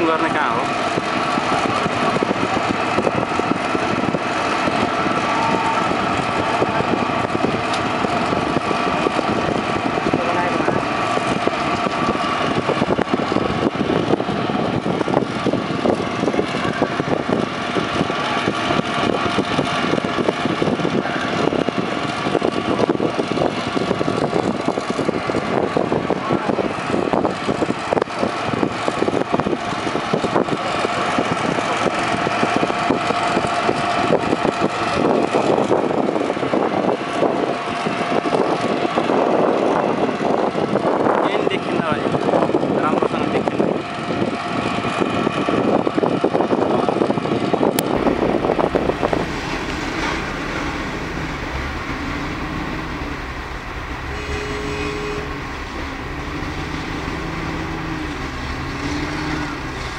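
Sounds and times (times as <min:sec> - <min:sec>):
large fire roaring: 0:00.0 - 0:40.9, 0:47.3 - 0:59.9
fire engines running: 0:00.0 - 0:59.9.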